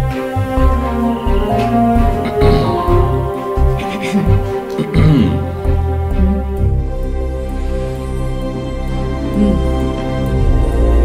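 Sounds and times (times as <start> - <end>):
film score sustained chords: 0.0 - 11.0
pulsing low bass: 0.0 - 11.0.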